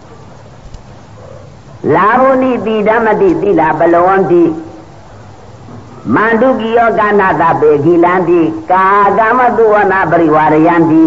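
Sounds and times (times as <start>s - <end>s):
old recording hiss: 0.0s - 11.0s
man preaching: 1.8s - 4.8s, 6.0s - 11.0s.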